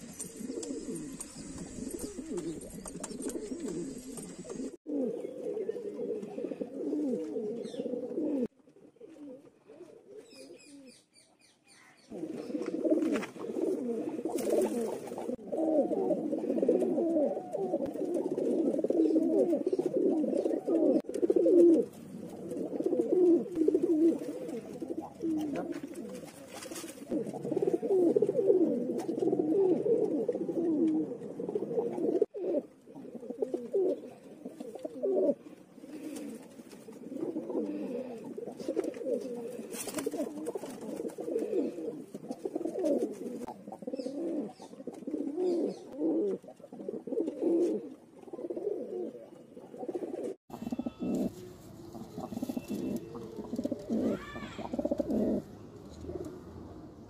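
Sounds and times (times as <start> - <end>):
pigeons cooing: 0.0 - 57.0.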